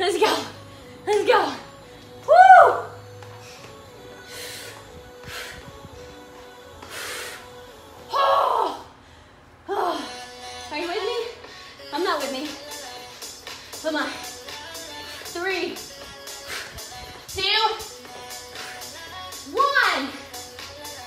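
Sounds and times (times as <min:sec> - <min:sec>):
background music: 0:00.0 - 0:09.0, 0:09.7 - 0:21.0
woman shouting woo: 0:02.3 - 0:03.0, 0:08.1 - 0:08.8.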